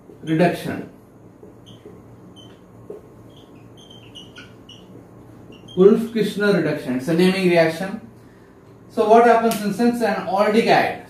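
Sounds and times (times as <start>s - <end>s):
faint room hum: 0.0s - 11.0s
man speaking: 0.2s - 1.0s
marker squeaking on whiteboard: 1.3s - 6.4s.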